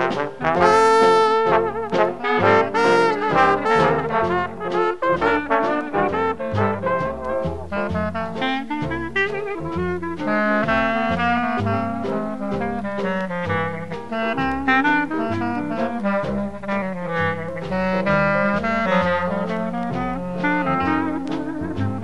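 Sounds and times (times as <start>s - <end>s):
jazz horns playing melody: 0.0s - 22.0s
steady beat: 0.0s - 22.0s.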